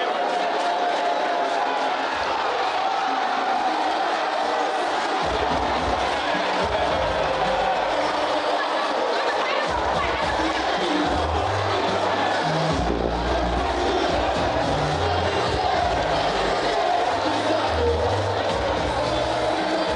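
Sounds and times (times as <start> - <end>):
crowd shouting and chattering: 0.0 - 19.9
music with heavy bass: 5.2 - 8.3, 9.6 - 19.9.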